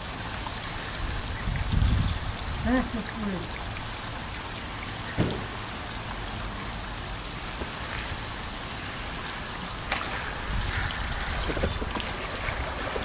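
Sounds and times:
light rain falling: 0.0s - 13.0s
short knock: 5.2s - 5.5s.

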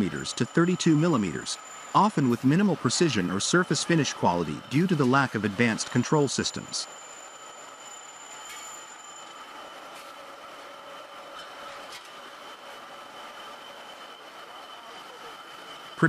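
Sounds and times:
high steady tones: 0.0s - 11.3s
rolling mill machinery whir: 0.0s - 16.0s.

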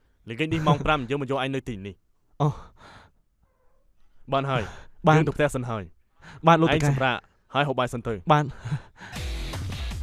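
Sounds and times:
man's breathy sigh: 8.6s - 9.4s.

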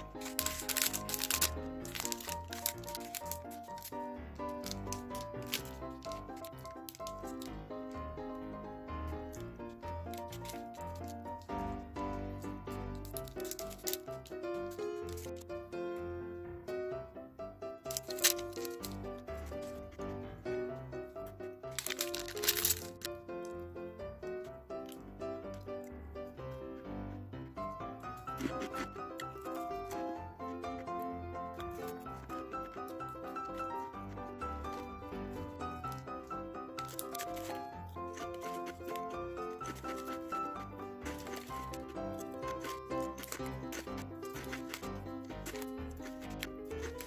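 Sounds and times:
plastic wrapper crinkling and tearing: 0.0s - 15.6s, 17.8s - 20.2s, 20.8s - 23.7s, 28.0s - 47.0s
background music with simple melody: 0.0s - 47.0s.

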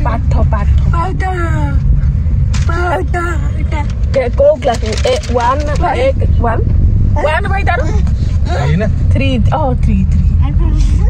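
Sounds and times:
people talking: 0.0s - 1.8s, 2.6s - 6.6s, 7.2s - 11.0s
car road and engine rumble: 0.0s - 11.0s.

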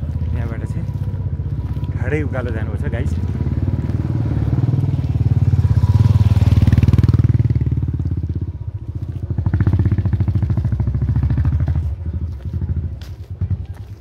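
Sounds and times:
motorcycle engine under load: 0.0s - 13.7s.

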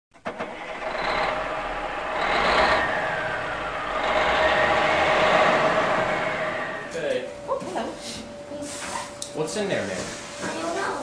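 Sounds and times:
truck engine running: 0.1s - 8.5s.

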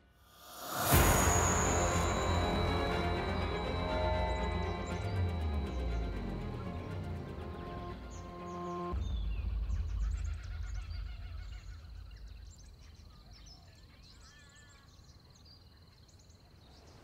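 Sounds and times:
steady high-pitched whine: 0.3s - 10.3s
deep rumble: 0.6s - 13.2s.

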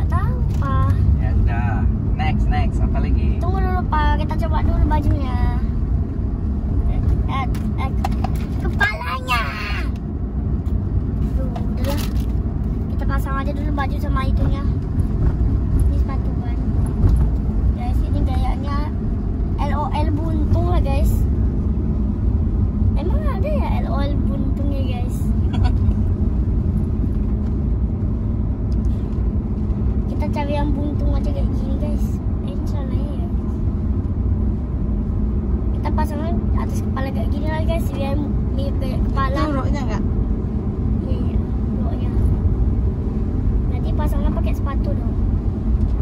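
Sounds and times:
car cabin rumble: 0.0s - 46.0s.

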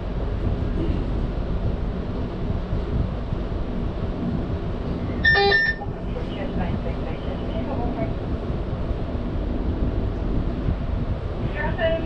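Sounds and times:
electric train rumble: 0.0s - 12.0s
short electronic beep: 5.2s - 5.8s.

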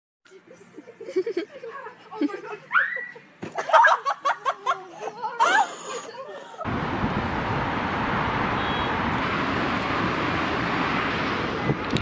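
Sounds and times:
wind rushing over microphone: 6.7s - 12.0s.

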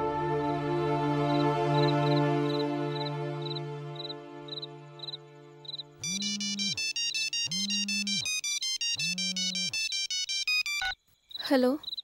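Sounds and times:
phone ringtone melody: 6.0s - 11.0s.

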